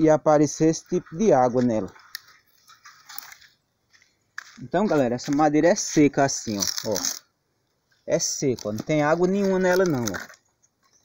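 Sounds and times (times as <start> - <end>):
dry twigs and leaves crunching: 0.5 - 11.0
light crackles: 0.6 - 11.0.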